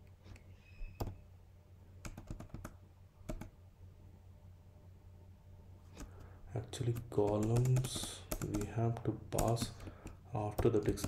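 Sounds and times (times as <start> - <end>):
keyboard typing: 2.0 - 3.5, 6.8 - 11.0.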